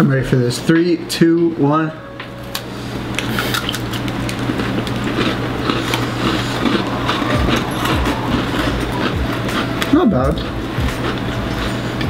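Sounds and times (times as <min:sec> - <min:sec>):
people chewing crunchy cookies: 0:03.2 - 0:12.0.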